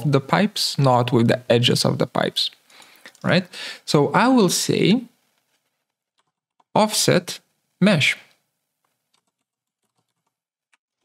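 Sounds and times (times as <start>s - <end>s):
faint keyboard typing: 5.2s - 6.8s, 8.8s - 11.0s.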